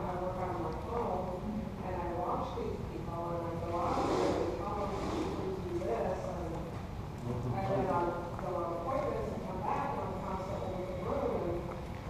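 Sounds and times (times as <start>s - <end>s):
low murmured talk: 0.0s - 11.8s.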